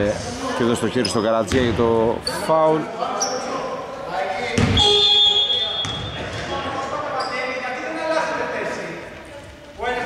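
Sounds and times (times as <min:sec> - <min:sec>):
players' voices: 0:00.0 - 0:10.0
referee's whistle: 0:04.7 - 0:06.3.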